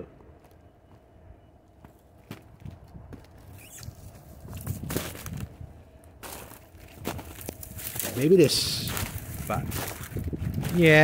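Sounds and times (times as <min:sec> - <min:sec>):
footsteps in snow and brush: 0:00.4 - 0:11.0.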